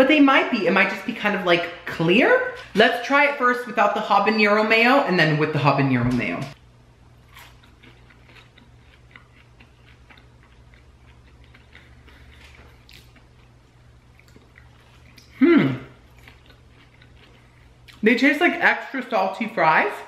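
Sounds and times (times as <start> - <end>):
person chewing crispy fry: 7.2 - 18.0.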